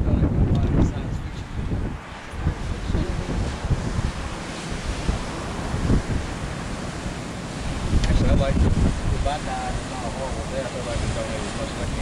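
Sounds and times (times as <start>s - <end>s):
wind gusting over microphone: 0.0s - 12.0s
ocean waves breaking: 1.0s - 12.0s.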